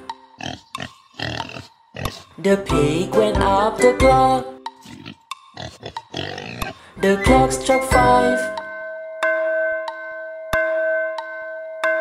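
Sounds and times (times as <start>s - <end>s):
pig oinking and grunting: 0.0s - 2.4s, 4.8s - 6.9s.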